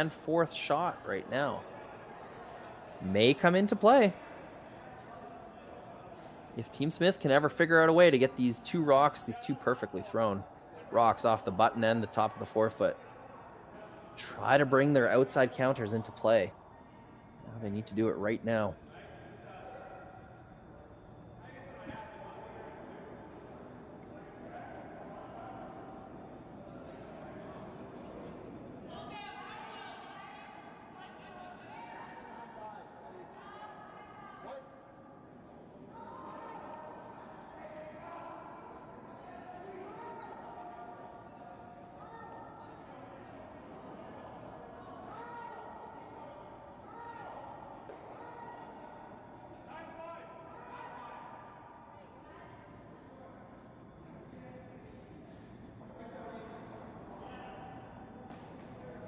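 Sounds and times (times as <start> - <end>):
steady rink hum: 6.1 - 50.6.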